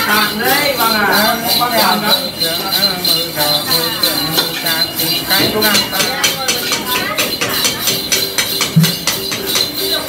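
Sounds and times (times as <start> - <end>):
small jingle bells ringing: 0.0 - 10.0.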